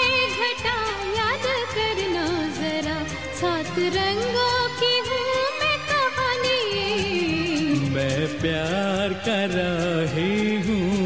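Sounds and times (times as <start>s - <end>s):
percussion rhythm: 0.0s - 11.0s
person singing: 6.8s - 11.0s.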